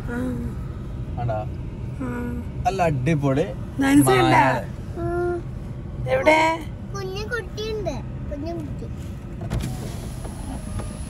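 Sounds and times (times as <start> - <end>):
car driving rumble: 0.0 - 11.0.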